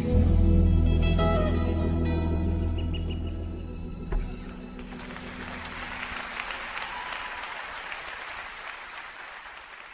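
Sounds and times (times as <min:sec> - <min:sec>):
audience applauding: 0:04.8 - 0:09.9.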